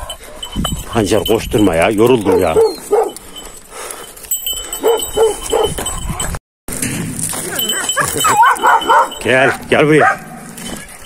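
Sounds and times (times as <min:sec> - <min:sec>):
dogs barking: 0:02.0 - 0:03.4, 0:04.6 - 0:06.4, 0:07.5 - 0:10.6
dogs yelping: 0:02.0 - 0:03.9, 0:04.5 - 0:06.4, 0:07.4 - 0:10.6.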